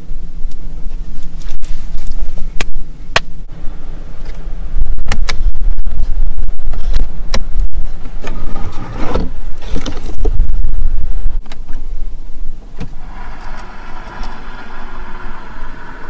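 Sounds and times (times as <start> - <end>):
electric motor whirr: 12.9 - 16.0.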